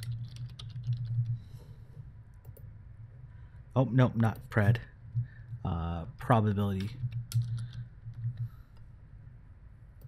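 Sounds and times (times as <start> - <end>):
low hum: 0.0 - 10.0
computer keyboard key clicks: 7.3 - 7.7.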